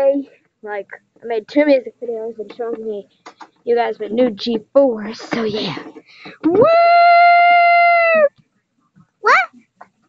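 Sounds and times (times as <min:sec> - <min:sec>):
person cheering woo: 0:06.5 - 0:08.3.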